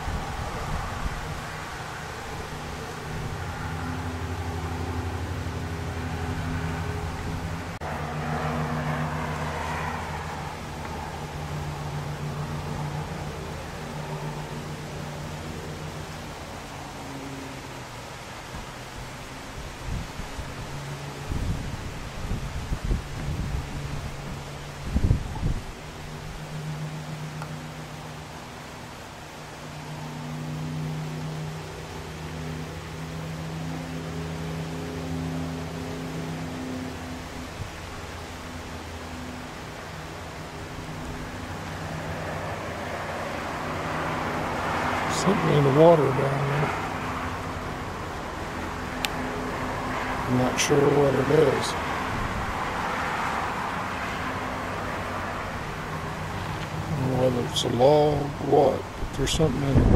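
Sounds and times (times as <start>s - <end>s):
wind gusts on microphone: 0.0s - 31.4s, 34.8s - 59.9s
drone propellers humming: 0.0s - 59.9s.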